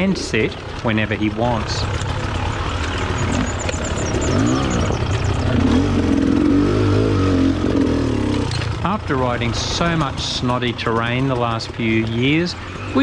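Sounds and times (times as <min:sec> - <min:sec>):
two-stroke motorcycle engine revving: 0:00.0 - 0:13.0.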